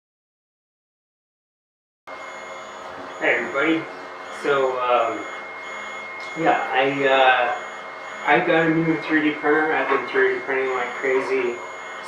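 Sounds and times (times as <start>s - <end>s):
high thin whines: 2.1s - 12.0s
room hum: 2.1s - 12.0s.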